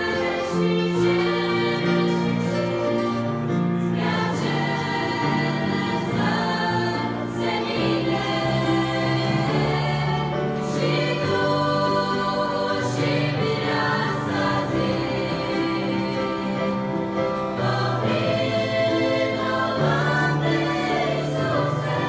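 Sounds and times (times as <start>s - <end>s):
girls' choir singing: 0.0s - 22.0s.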